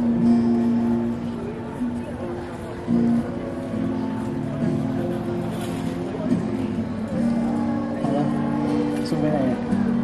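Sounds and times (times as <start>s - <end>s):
amplified acoustic guitar notes: 0.0s - 10.0s.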